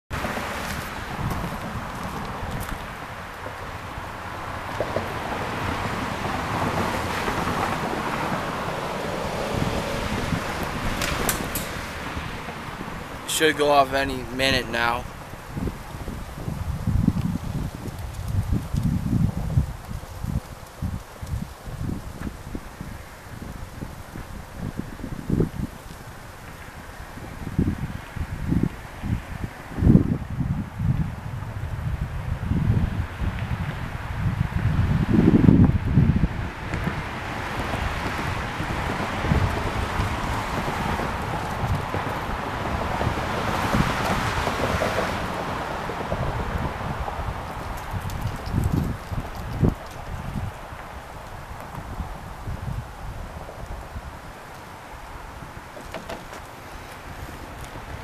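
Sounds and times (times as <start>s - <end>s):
wind buffeting microphone: 0.1s - 58.0s
broad rushing hiss: 10.0s - 14.2s.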